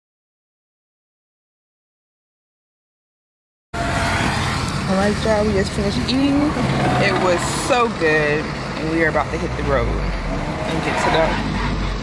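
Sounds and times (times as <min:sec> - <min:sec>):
car cabin rumble: 0:04.4 - 0:12.0.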